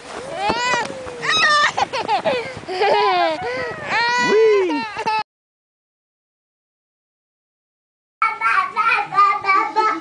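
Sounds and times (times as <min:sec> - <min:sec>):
toddler squealing: 0:00.4 - 0:01.8.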